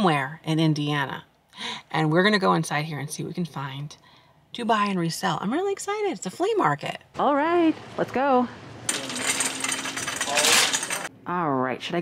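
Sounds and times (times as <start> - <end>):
shopping cart rattling on casters: 8.9 - 11.1.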